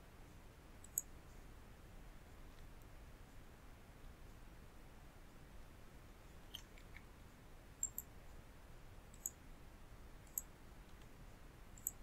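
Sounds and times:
faint background noise: 0.0s - 12.0s
computer mouse clicks: 0.8s - 1.1s, 7.8s - 8.1s, 9.2s - 9.4s, 10.3s - 11.1s, 11.8s - 12.0s.

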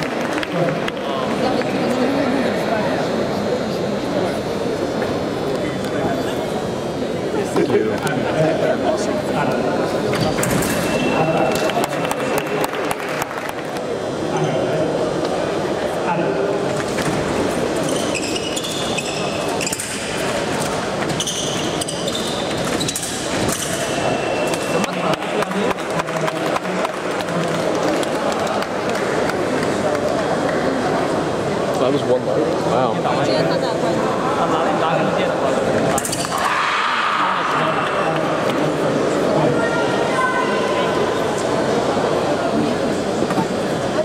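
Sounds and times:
spectators chattering: 0.0s - 44.0s.

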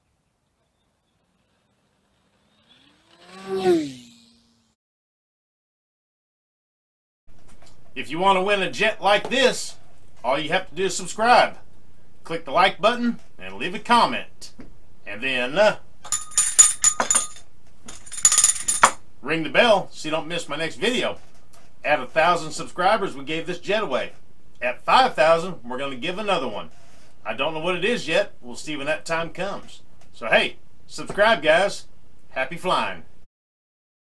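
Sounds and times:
small hand bell ringing: 16.1s - 17.4s, 18.0s - 19.0s.

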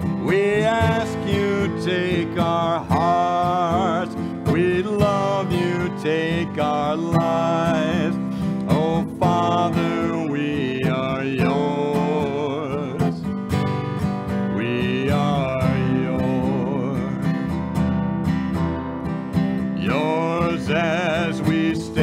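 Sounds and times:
person singing a hymn: 0.0s - 13.3s, 14.5s - 17.4s, 19.8s - 22.0s
acoustic guitar strumming chords: 0.0s - 22.0s.

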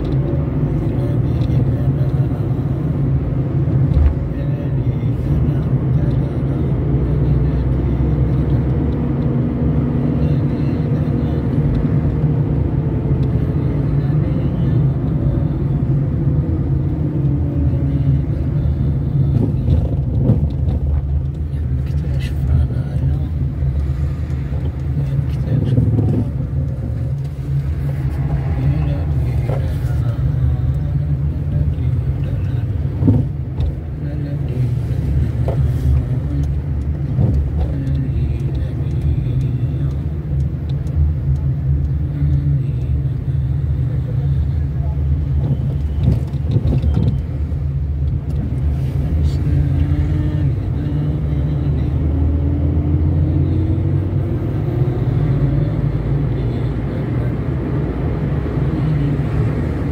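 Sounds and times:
car engine and road rumble: 0.0s - 59.9s.

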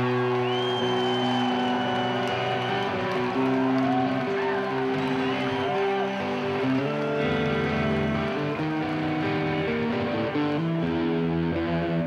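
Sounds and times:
overdriven electric guitar chord: 2.8s - 12.0s.

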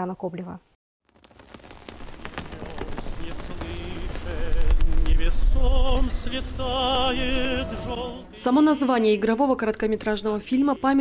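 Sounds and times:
fire crackling: 1.0s - 8.4s
low rumble: 1.2s - 8.4s.

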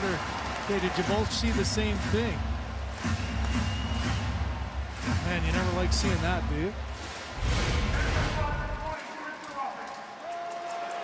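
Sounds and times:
whoosh over deep rumble: 7.4s - 8.8s.

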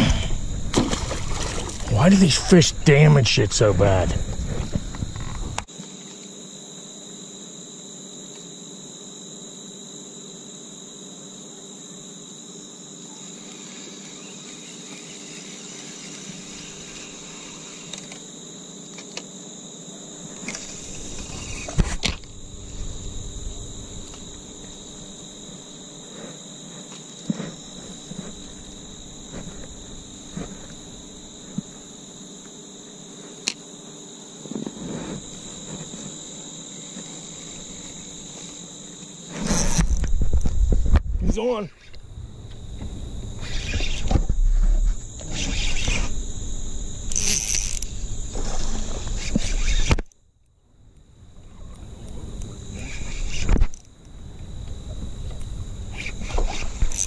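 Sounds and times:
crickets chirping: 0.0s - 57.0s
fishing reel clicks: 47.1s - 47.9s.

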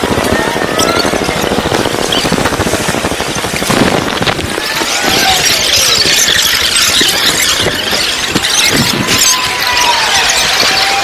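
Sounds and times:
dense wash of noise: 0.0s - 11.0s.

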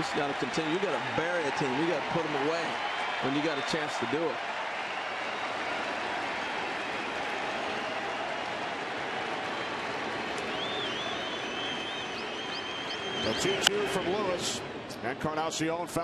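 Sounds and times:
stadium crowd cheering: 0.0s - 16.0s
high whistles: 9.5s - 14.4s.

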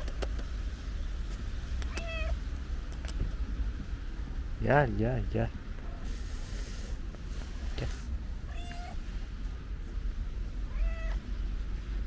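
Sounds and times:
steady low rumble: 0.0s - 12.0s
cat meowing: 1.8s - 2.4s, 8.4s - 9.1s, 10.6s - 11.3s.

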